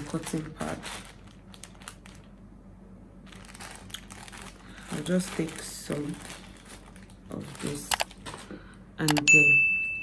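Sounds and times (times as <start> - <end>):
plastic wrapper crinkling: 0.0 - 2.4, 3.2 - 8.4.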